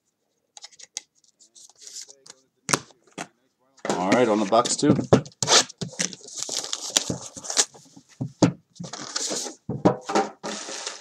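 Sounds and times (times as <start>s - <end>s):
cardboard boxes knocking and rustling: 6.9s - 10.6s.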